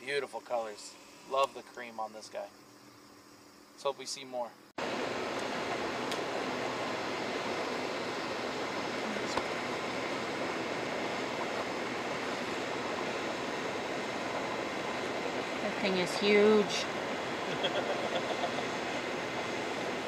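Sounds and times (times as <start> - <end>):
steady rushing noise: 4.8 - 20.0.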